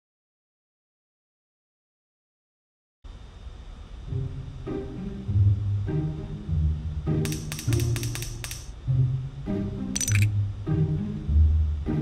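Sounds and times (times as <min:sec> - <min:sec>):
bright clicking sound effects: 0:07.2 - 0:08.7, 0:10.0 - 0:10.3.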